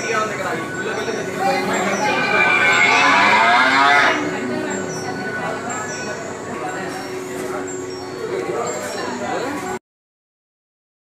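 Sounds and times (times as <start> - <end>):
cow mooing: 1.6 - 4.4.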